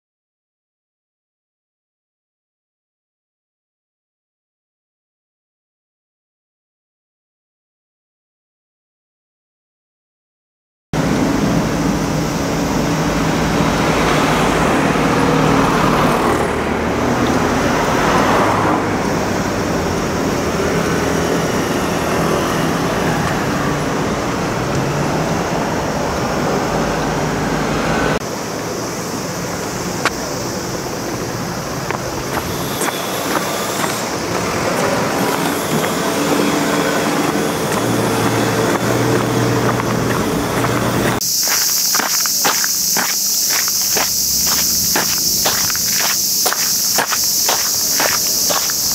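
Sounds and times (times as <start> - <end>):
cars passing: 11.0 - 48.9
low engine hum: 11.0 - 48.9
tyre and road noise: 11.0 - 48.9.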